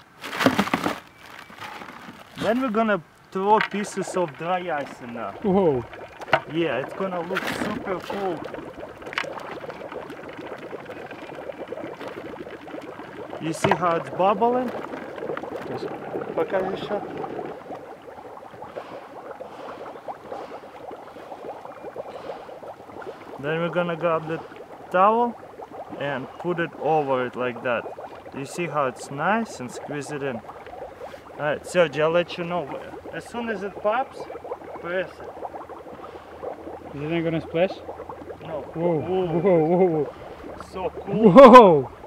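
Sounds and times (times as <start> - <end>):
plastic bag crinkling: 0.0 - 2.8
dry ice bubbling in water: 0.0 - 42.0.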